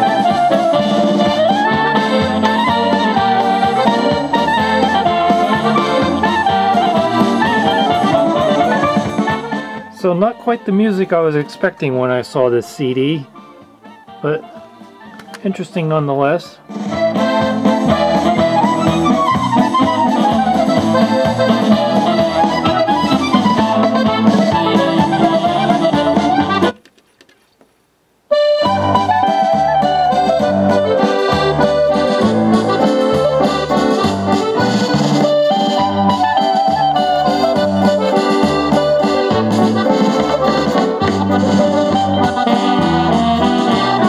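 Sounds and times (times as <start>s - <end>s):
music through stereo speakers: 0.0s - 26.8s, 28.3s - 44.0s.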